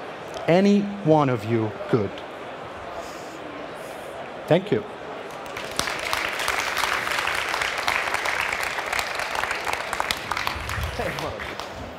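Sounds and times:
audience applauding: 5.3s - 11.9s.

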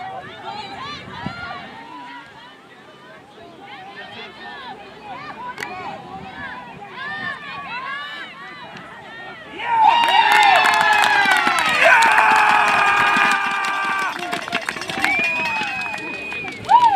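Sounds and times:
people talking: 0.0s - 16.9s
crowd cheering and shouting: 5.3s - 16.9s
high held yell: 9.5s - 14.3s
people clapping: 9.8s - 16.9s.

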